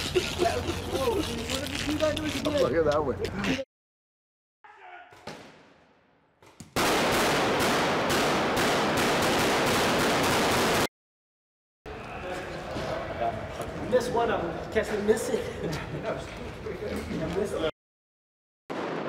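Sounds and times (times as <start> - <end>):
rapid automatic gunfire: 6.8 - 10.9.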